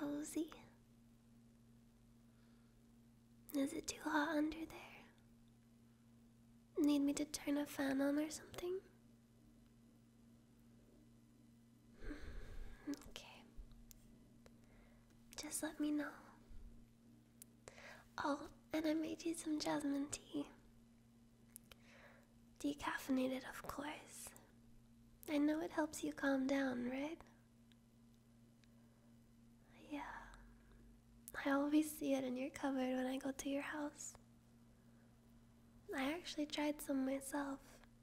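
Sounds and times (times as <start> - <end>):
faint low hum: 0.0 - 38.0
soft breathy whisper: 3.6 - 5.2, 11.9 - 13.7, 14.6 - 16.6, 21.7 - 24.6, 29.6 - 31.8.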